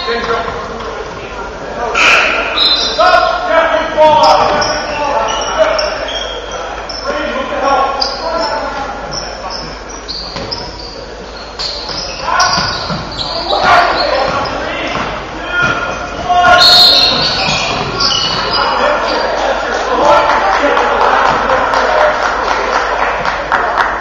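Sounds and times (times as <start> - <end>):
voices and shouts in a gym: 0.0 - 24.0
sneakers squeaking on floor: 2.0 - 19.5.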